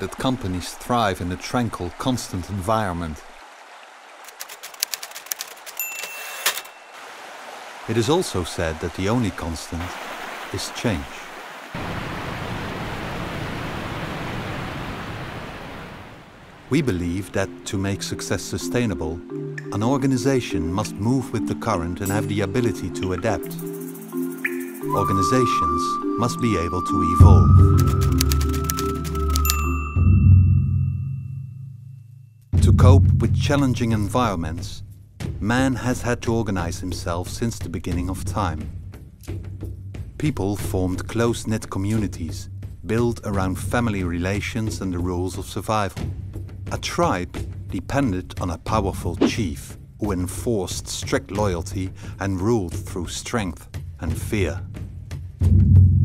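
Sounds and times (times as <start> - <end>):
stream rushing: 0.0 - 17.7
typewriter keys clacking: 4.3 - 6.7, 27.7 - 29.7
typewriter bell ringing: 5.7 - 7.0, 27.5 - 30.1
faint high ringing tone: 5.9 - 7.0, 29.5 - 32.4.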